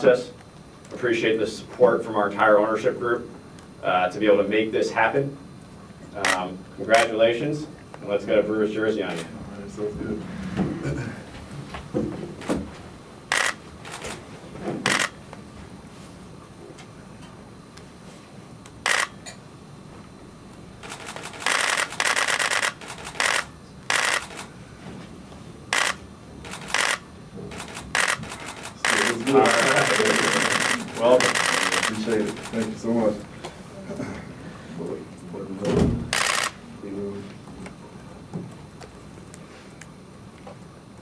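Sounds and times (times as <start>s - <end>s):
camera shutters clicking: 6.2s - 7.1s, 13.3s - 14.2s, 14.8s - 15.2s, 18.8s - 19.2s, 20.8s - 24.5s, 25.7s - 32.8s, 36.1s - 36.6s.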